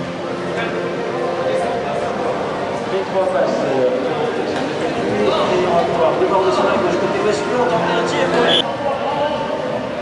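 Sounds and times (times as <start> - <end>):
crowd chatter in arena: 0.0 - 10.0.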